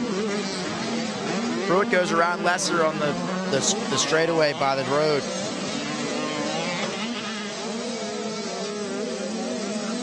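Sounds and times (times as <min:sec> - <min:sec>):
two-stroke motocross bikes: 0:00.0 - 0:10.0.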